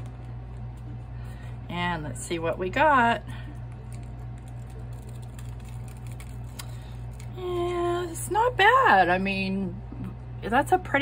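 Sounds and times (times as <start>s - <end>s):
air conditioner hum: 0.0s - 11.0s
foil peeling crackle: 3.7s - 8.0s.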